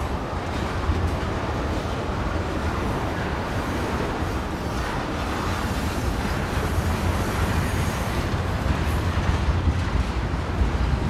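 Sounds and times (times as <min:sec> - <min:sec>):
freight train wheels clattering: 0:00.0 - 0:11.0.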